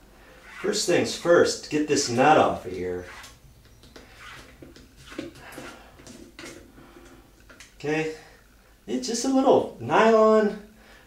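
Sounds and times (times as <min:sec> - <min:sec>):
light scraping: 0:00.3 - 0:07.8
plastic nut unscrewing: 0:03.6 - 0:07.8.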